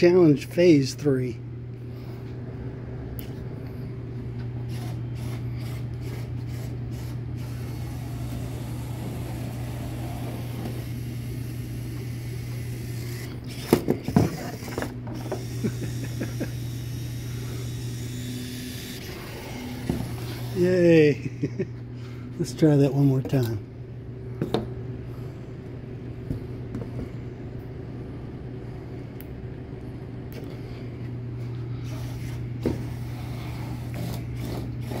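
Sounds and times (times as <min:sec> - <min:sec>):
low hum: 0:00.0 - 0:35.0
robot motors and servos running: 0:04.7 - 0:20.6, 0:31.8 - 0:35.0.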